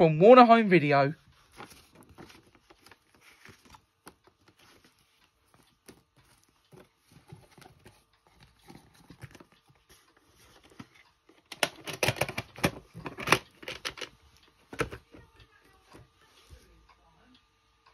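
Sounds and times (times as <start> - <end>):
plastic cassette case clicks: 11.4 - 15.0.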